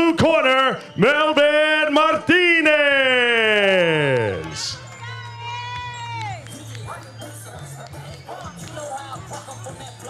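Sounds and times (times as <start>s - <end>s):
arena music held tone: 0.0s - 10.0s.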